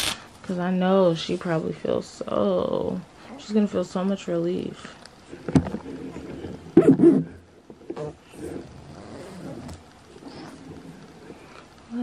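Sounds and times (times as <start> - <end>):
blanket rustling: 8.5 - 11.6.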